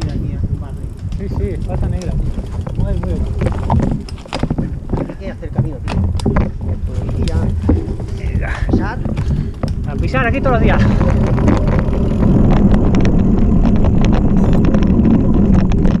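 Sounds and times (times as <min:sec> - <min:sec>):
bike rattling and knocking: 0:00.0 - 0:16.0
bike tyre rumble: 0:00.0 - 0:16.0
wind buffeting: 0:00.0 - 0:16.0.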